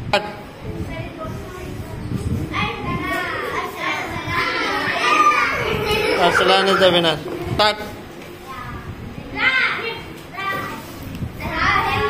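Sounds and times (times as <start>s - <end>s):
young children calling and chattering: 0.2s - 12.0s.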